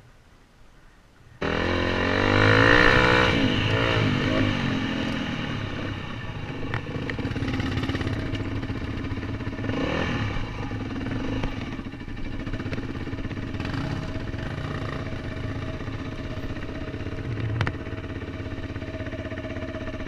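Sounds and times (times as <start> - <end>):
dirt bike engine under load: 6.2 - 18.5.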